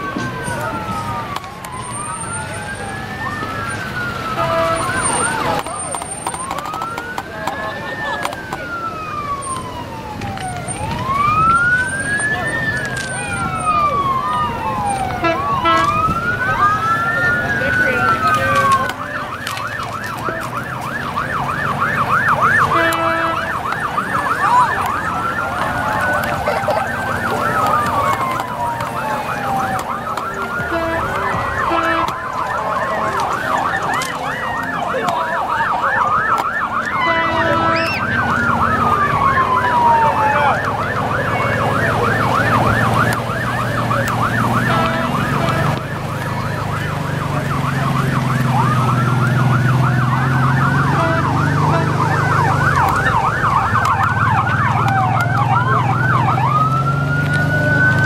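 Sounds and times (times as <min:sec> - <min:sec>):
siren wail: 0:00.0 - 0:58.0
siren yelp: 0:00.0 - 0:58.0
trucks rumbling past: 0:00.0 - 0:58.0.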